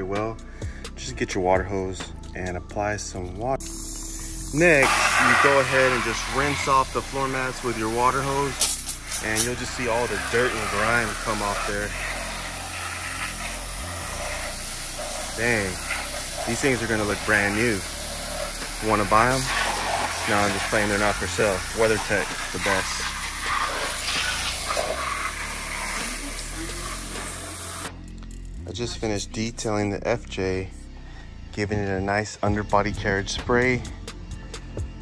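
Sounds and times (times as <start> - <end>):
water spray hitting rubber mats: 4.6 - 27.9.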